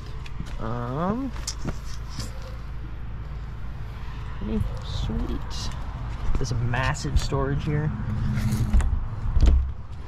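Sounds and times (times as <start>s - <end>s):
storage door creaking: 8.0s - 9.8s.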